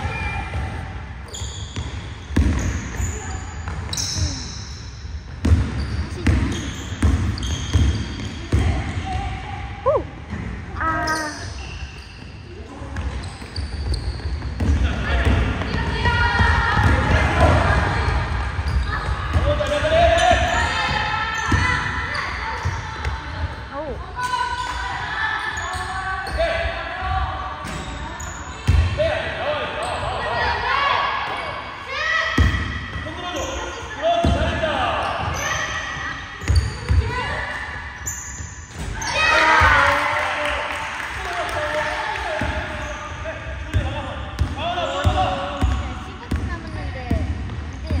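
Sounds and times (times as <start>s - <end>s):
basketball bouncing on wooden floor: 43.8s - 48.0s.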